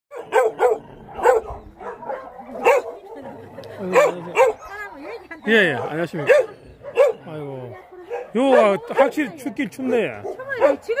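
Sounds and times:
dog barking: 0:00.1 - 0:03.3, 0:03.9 - 0:07.3, 0:08.0 - 0:11.0.

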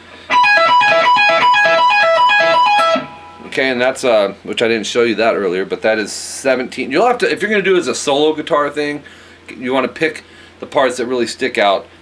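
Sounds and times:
electric guitar lick: 0:00.1 - 0:03.6.

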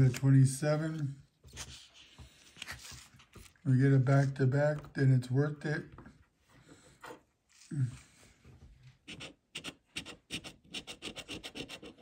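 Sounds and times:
paper handling sounds: 0:00.0 - 0:04.3
coin scratching lottery ticket: 0:09.1 - 0:12.0.

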